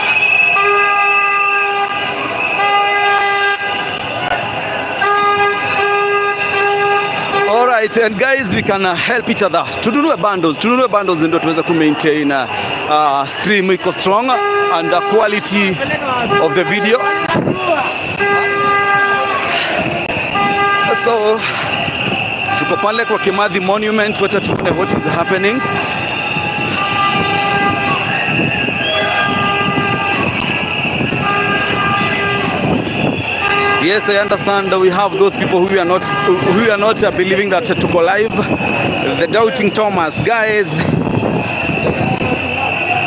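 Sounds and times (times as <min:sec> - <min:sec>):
horn blasts: 0:00.0 - 0:08.5, 0:14.0 - 0:39.6
street and crowd noise: 0:00.0 - 0:43.0.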